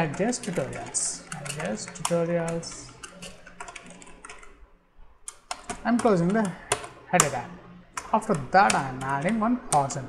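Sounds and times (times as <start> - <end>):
typing on keyboard: 0.0 - 4.6, 5.3 - 10.0.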